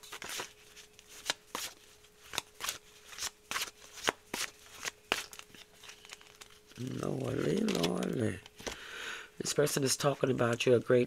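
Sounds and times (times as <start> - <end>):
cards being shuffled: 0.0 - 8.8.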